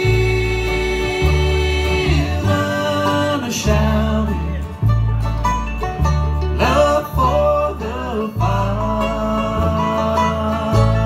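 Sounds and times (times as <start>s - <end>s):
acoustic guitars: 0.0s - 11.0s
banjo: 0.0s - 11.0s
fiddle melody: 0.0s - 11.0s
upright bass: 0.0s - 11.0s.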